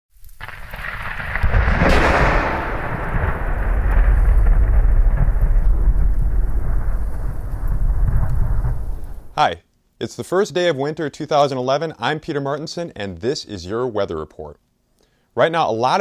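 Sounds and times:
rain: 0.1 - 9.4
rolling thunder: 0.4 - 9.4.

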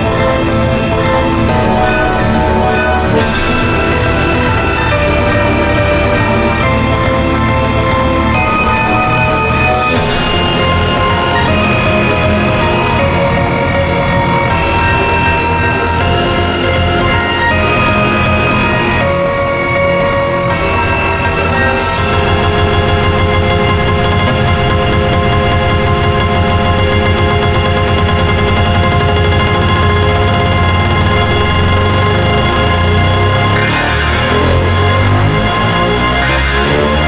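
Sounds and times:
dense synthesized piano notes: 0.0 - 37.0.

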